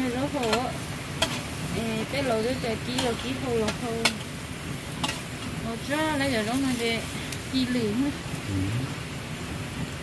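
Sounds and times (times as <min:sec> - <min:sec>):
cabbage sizzling: 0:00.0 - 0:10.0
metal spatula clinking on pot: 0:00.2 - 0:01.4, 0:02.2 - 0:04.3, 0:05.0 - 0:05.2.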